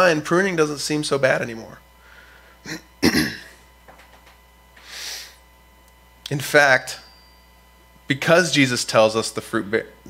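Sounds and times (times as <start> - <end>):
man clearing his throat: 2.7 - 3.6.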